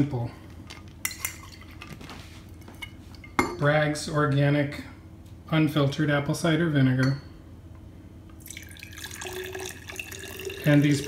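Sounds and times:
liquid pouring into glass: 8.4s - 11.0s.

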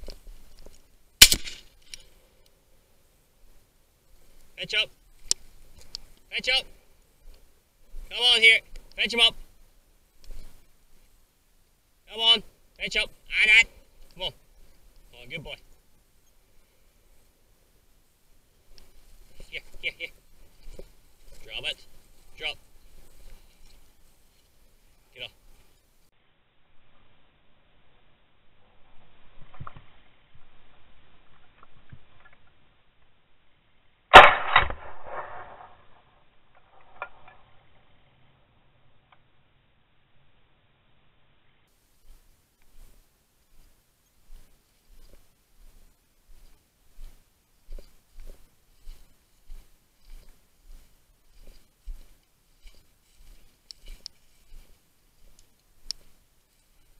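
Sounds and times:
rustling grass: 0.0s - 32.7s, 41.5s - 56.9s
shotgun shot: 1.2s - 1.7s, 34.1s - 35.8s.

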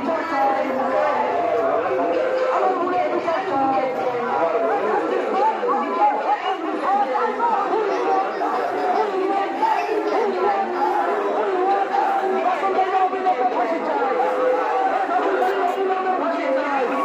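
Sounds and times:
crowd voices babbling: 0.0s - 17.0s.

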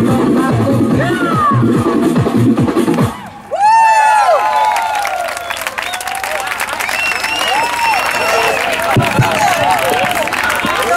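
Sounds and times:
dance music: 0.0s - 3.3s
crowd clapping: 2.9s - 10.9s
crowd whooping and cheering: 3.0s - 10.9s.

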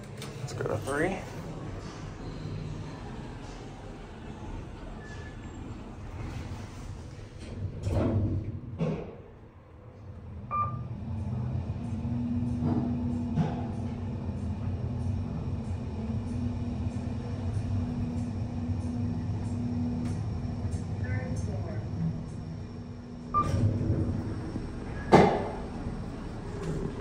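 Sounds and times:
elevator running with steady hum: 0.0s - 27.0s
elevator doors thudding shut: 7.3s - 9.2s, 23.2s - 27.0s.

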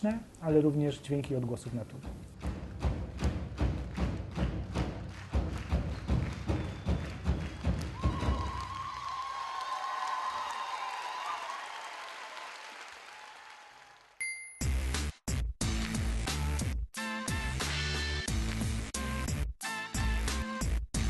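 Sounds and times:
music: 1.4s - 9.0s, 14.6s - 21.0s
big drums beaten rhythmically: 2.0s - 8.6s.

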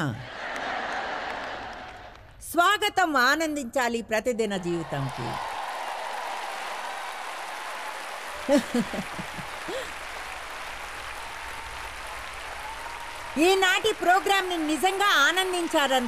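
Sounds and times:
audience applauding: 0.4s - 2.3s, 4.8s - 16.0s
person laughing: 8.5s - 10.0s.

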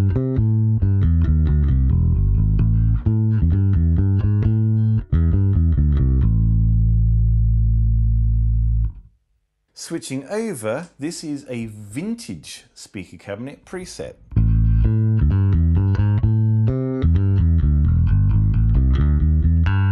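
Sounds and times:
electric bass guitar low notes: 0.0s - 9.1s, 14.2s - 19.9s.

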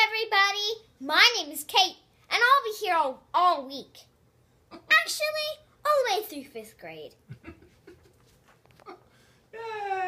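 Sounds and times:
girl giggling: 7.2s - 8.2s.

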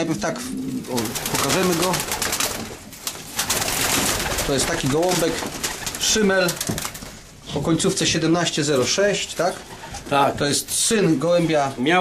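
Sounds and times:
pigeons cooing: 0.3s - 6.6s
rustling and scuffling: 1.0s - 11.7s.

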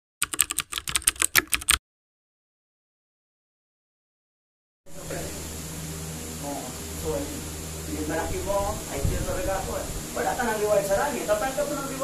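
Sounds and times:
keyboard typing clicks: 0.2s - 1.8s.

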